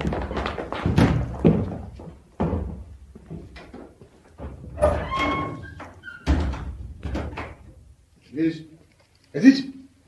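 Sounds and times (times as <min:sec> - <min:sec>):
dull thuds and knocks: 0:00.0 - 0:04.8.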